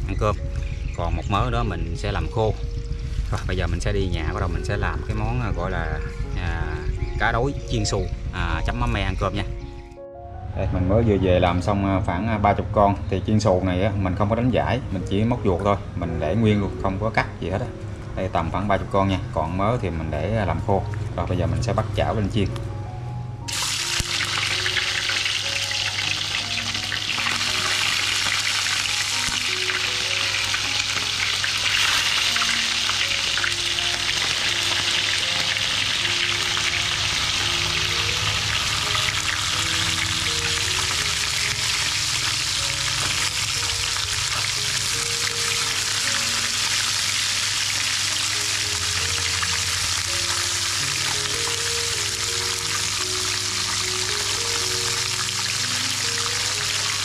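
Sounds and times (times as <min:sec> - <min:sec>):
fish sizzling in hot oil: 0:23.5 - 0:57.0.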